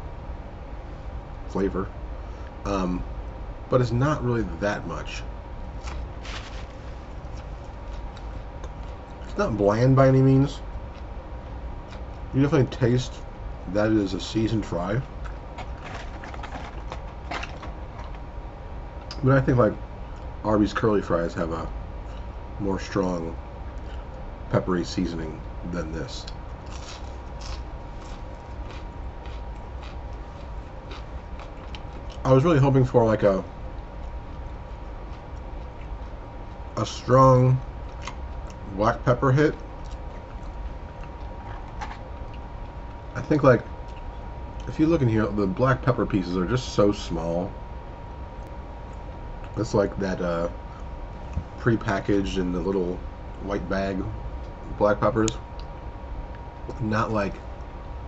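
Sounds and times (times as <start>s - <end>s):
low steady hum: 0.0s - 58.0s
person chewing crispy fries: 5.8s - 9.3s, 15.2s - 18.2s, 26.2s - 32.3s, 39.6s - 43.0s.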